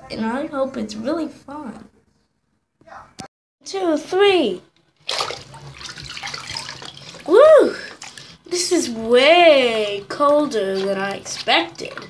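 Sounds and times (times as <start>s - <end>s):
water sloshing: 4.9s - 12.0s
water splashing in a tub: 5.0s - 12.0s.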